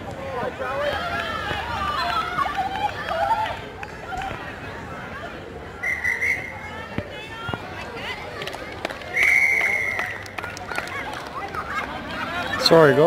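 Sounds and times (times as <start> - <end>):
spectators and children talking: 0.0 - 13.0
referee's whistle blasts: 5.8 - 6.6, 9.2 - 10.2.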